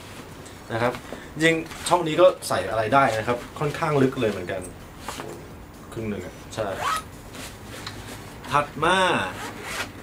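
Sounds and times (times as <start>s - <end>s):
backpack zipper being pulled: 6.8s - 7.1s, 9.3s - 10.0s.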